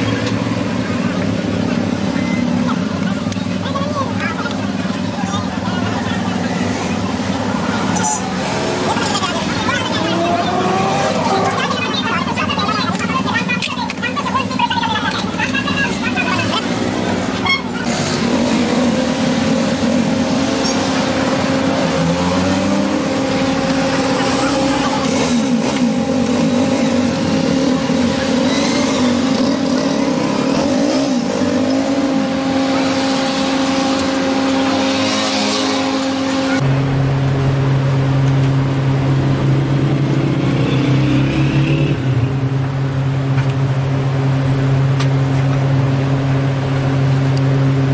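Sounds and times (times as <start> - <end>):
indistinct voices: 0.0 - 36.6
vehicle engine running: 0.0 - 47.9.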